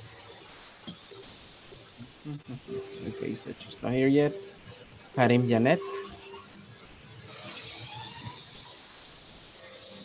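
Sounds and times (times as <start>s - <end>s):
steady hiss: 8.2s - 10.0s.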